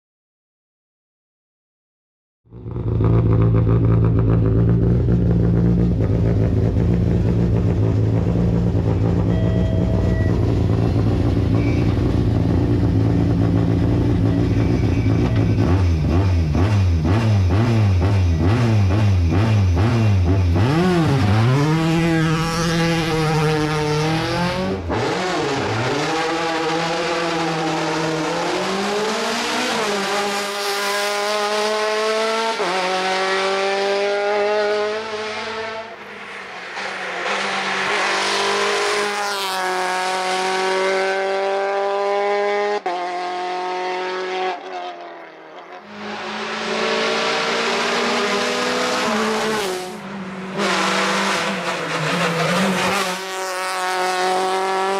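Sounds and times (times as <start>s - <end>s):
race car engine revving: 2.5s - 54.9s.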